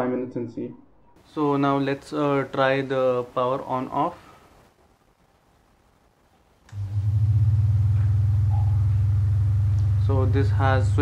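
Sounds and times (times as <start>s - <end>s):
desk fan humming: 6.6s - 11.0s.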